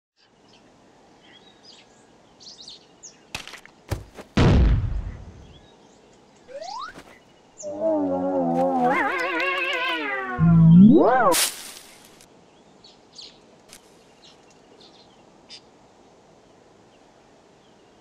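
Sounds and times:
birdsong: 0:00.2 - 0:04.1, 0:05.0 - 0:11.3, 0:12.3 - 0:18.0
loud cartoon crash: 0:04.4 - 0:05.4.

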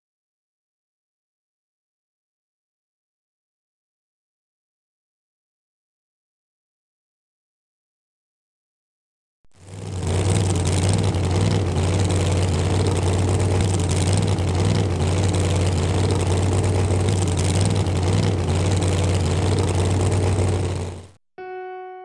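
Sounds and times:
engine humming steadily: 0:09.5 - 0:21.2.

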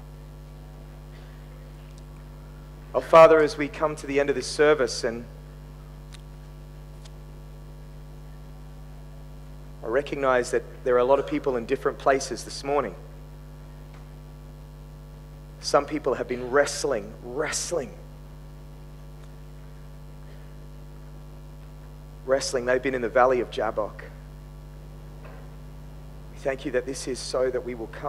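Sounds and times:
electrical mains hum: 0:00.0 - 0:28.0
man speaking: 0:02.9 - 0:05.3, 0:09.8 - 0:13.1, 0:15.6 - 0:18.0, 0:22.3 - 0:24.2, 0:26.4 - 0:28.0.

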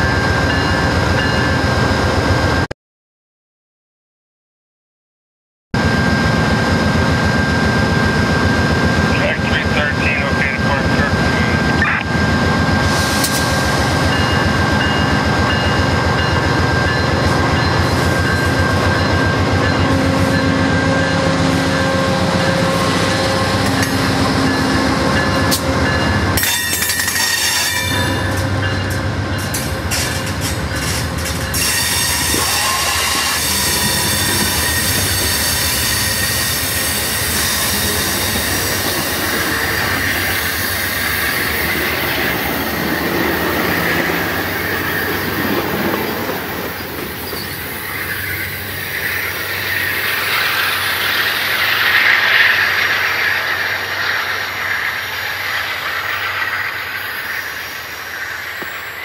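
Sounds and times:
diesel locomotive engine droning: 0:00.0 - 0:02.7, 0:05.8 - 0:59.0
train wheels clicking and squealing: 0:12.8 - 0:21.2, 0:21.8 - 0:59.0.

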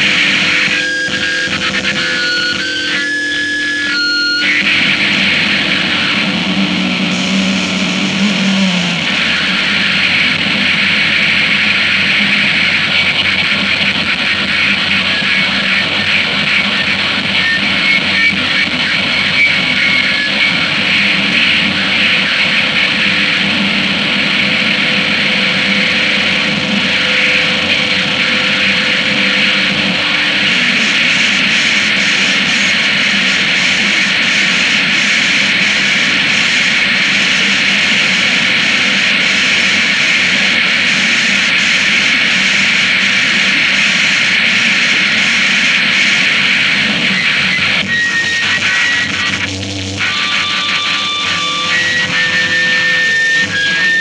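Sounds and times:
wall of distorted noise: 0:00.0 - 0:54.0.

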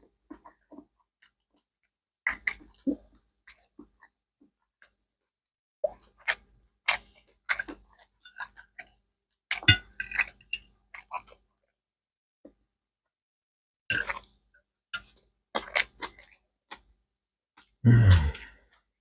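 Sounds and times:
chewing and mouth sounds: 0:02.3 - 0:05.0.

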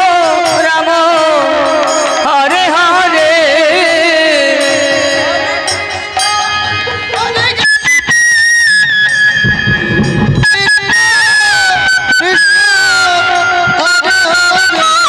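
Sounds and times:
high held melody: 0:04.6 - 0:14.8
ensemble drums: 0:04.6 - 0:15.0.

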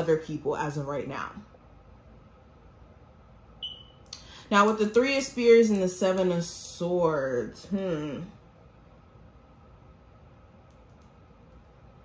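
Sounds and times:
high electronic beep: 0:03.6 - 0:04.0.

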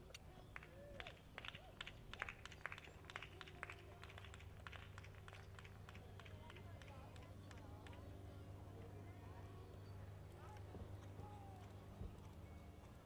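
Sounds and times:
low steady hum: 0:00.0 - 0:13.0
horse hooves cantering on sand: 0:10.3 - 0:13.0.

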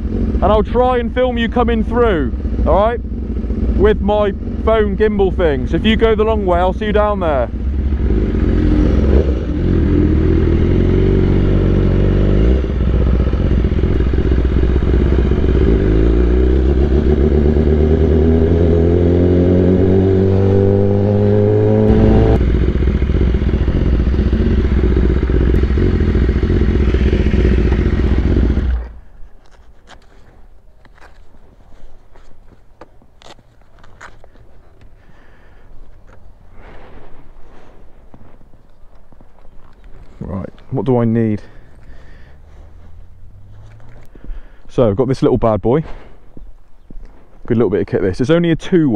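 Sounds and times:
motorcycle engine accelerating: 0:00.0 - 0:29.0, 0:42.0 - 0:44.1
handling clicks and scrapes: 0:28.8 - 0:35.0.

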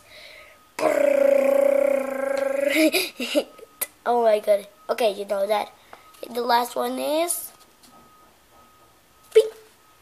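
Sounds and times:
boy making mouth drumroll: 0:00.8 - 0:02.9.

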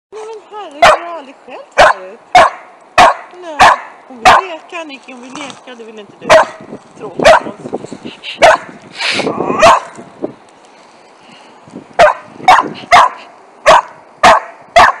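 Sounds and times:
dog barking sharply: 0:01.8 - 0:04.5, 0:08.4 - 0:08.6, 0:09.6 - 0:09.9, 0:12.0 - 0:15.0.

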